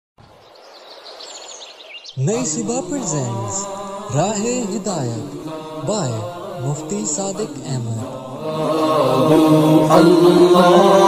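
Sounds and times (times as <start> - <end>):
birds chirping: 0.2 - 7.8.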